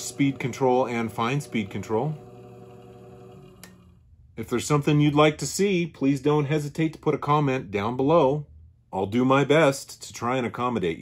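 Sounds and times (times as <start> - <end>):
treadmill motor hum: 0.0 - 4.0.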